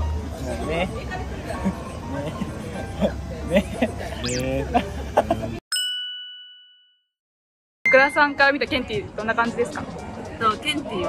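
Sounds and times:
bright bell-like ding: 0:05.7 - 0:07.1.

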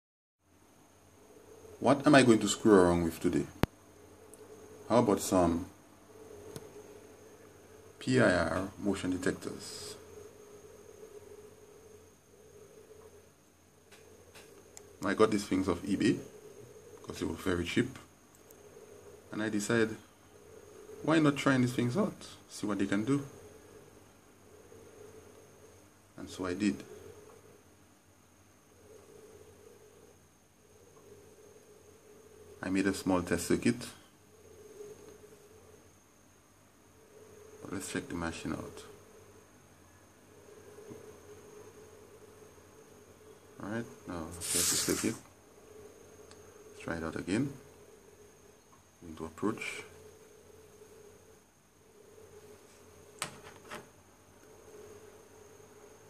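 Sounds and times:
faint high-pitched whine: 0:00.4 - 0:56.0
faint steady hum: 0:00.4 - 0:56.0.

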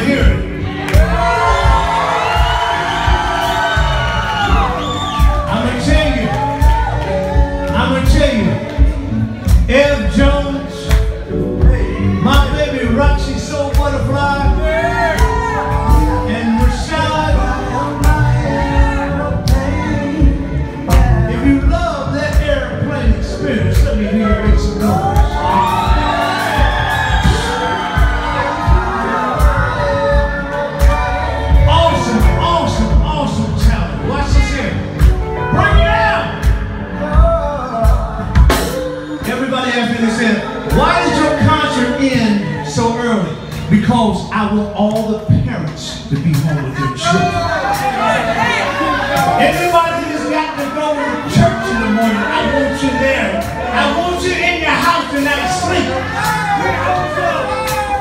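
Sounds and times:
crowd cheering: 0:00.0 - 0:58.0
live band playing: 0:00.0 - 0:58.0
steady low beat: 0:00.0 - 0:58.0
kick drum beat: 0:00.2 - 0:10.4, 0:23.8 - 0:38.7.

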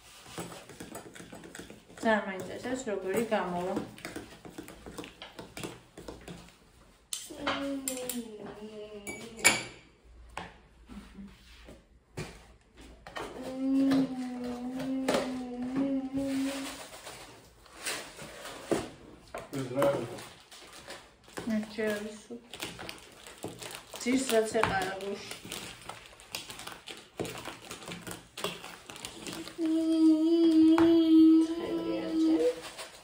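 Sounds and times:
spoon stirring in plastic bowl: 0:00.0 - 0:09.6, 0:10.3 - 0:29.8
person speaking or humming: 0:29.6 - 0:32.6.

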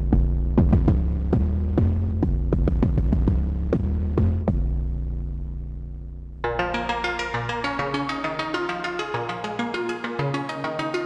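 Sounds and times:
low synthesizer drone: 0:04.9 - 0:11.0.

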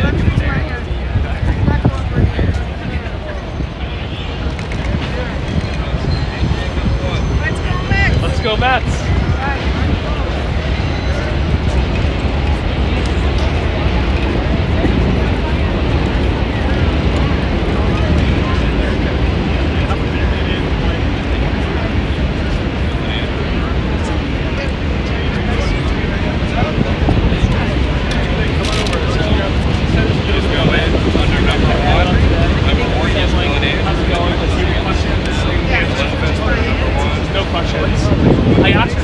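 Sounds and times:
indistinct chatter outdoors: 0:00.0 - 0:39.0.

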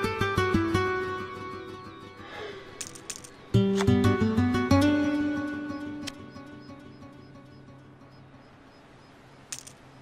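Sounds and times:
poker chips clattering: 0:02.8 - 0:03.4, 0:09.5 - 0:09.8.

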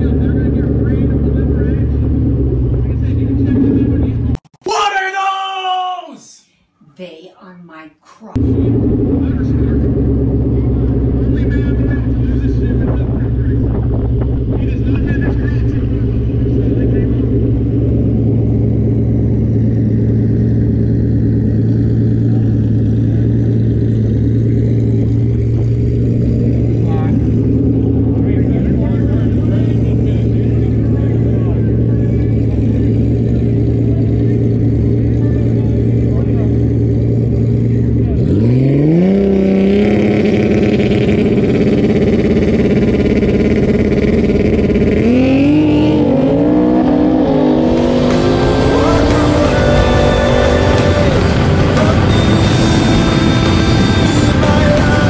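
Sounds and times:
car engine idling and revving: 0:00.0 - 0:04.6, 0:08.3 - 0:55.0.

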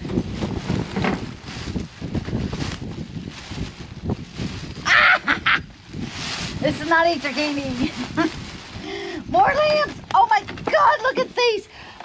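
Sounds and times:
plastic bag rustling: 0:00.0 - 0:11.7.

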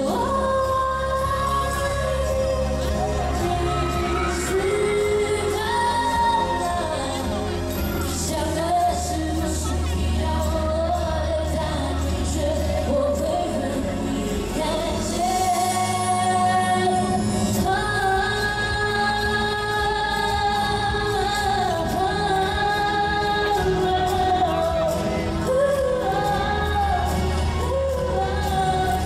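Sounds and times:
steady bass: 0:00.0 - 0:29.0
woman singing into microphone: 0:00.0 - 0:29.0.

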